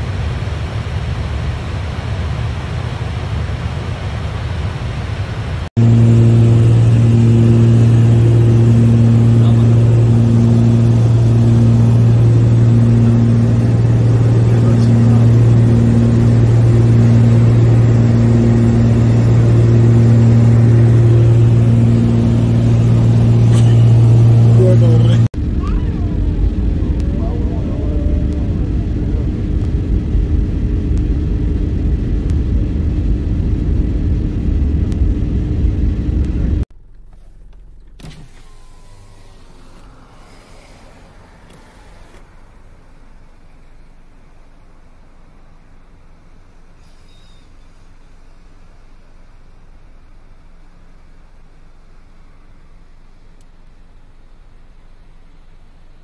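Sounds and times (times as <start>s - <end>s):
aircraft cabin engine drone: 0.0s - 56.0s
rough cabin rumble: 0.0s - 56.0s
pulsing high tone: 5.8s - 29.6s.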